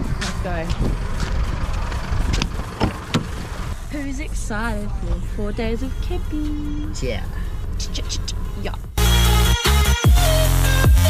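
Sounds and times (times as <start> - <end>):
steady low rumble: 0.0 - 9.0
car door clicks: 2.3 - 3.4.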